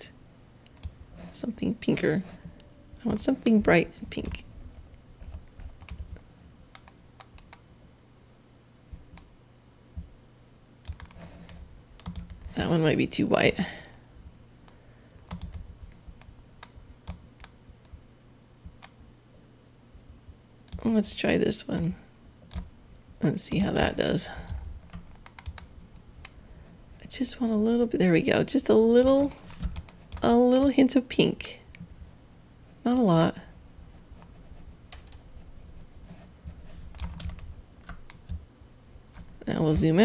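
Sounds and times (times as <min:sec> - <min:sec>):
low electrical hum: 0:00.0 - 0:40.0
computer mouse clicks: 0:00.6 - 0:01.0, 0:05.3 - 0:07.6, 0:10.8 - 0:12.5, 0:14.6 - 0:18.0, 0:18.6 - 0:19.0, 0:22.5 - 0:22.7, 0:24.5 - 0:26.4, 0:34.9 - 0:35.2, 0:36.9 - 0:38.4.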